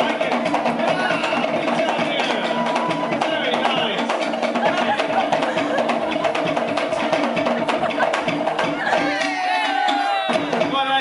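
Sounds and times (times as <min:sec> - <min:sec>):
voices calling out: 0:00.0 - 0:10.8
wooden slit drums and drums: 0:00.0 - 0:11.0.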